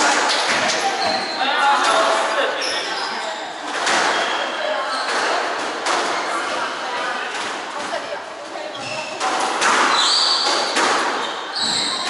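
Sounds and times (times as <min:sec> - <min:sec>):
squash ball struck by rackets: 0:09.2 - 0:11.9.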